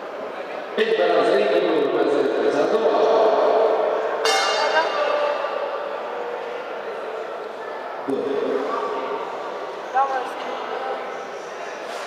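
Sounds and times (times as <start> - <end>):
boxing ring bell: 4.2 - 5.7.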